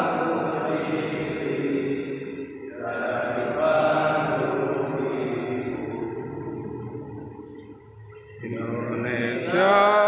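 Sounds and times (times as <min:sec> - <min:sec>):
person singing through microphone: 0:08.2 - 0:10.0.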